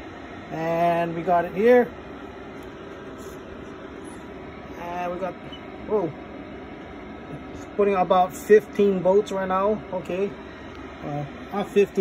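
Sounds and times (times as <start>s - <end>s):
cooling fans whirring: 0.0s - 12.0s.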